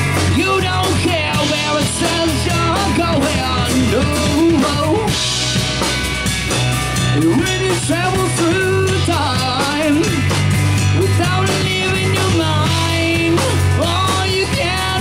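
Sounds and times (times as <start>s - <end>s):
bass guitar: 0.0s - 15.0s
drum kit: 0.0s - 15.0s
electric guitar: 0.0s - 15.0s.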